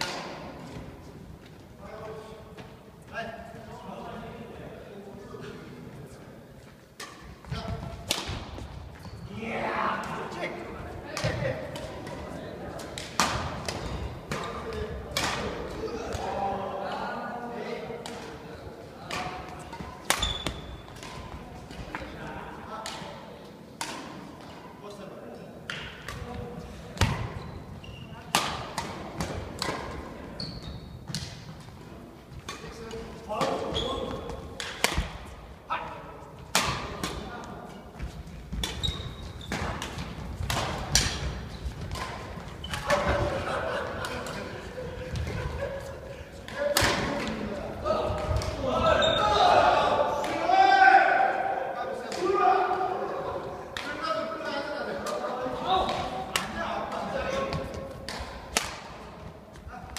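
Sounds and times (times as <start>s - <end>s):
badminton rackets striking shuttlecock: 8.0s - 8.6s, 12.8s - 16.3s, 19.0s - 22.0s, 23.8s - 24.3s, 28.3s - 30.0s, 32.4s - 35.3s, 36.5s - 37.3s, 38.5s - 43.3s, 55.8s - 59.0s
shoe squeaks: 9.0s - 9.4s, 20.2s - 20.9s, 27.3s - 28.3s, 30.4s - 31.1s, 33.6s - 34.4s, 38.5s - 39.7s, 48.8s - 49.4s.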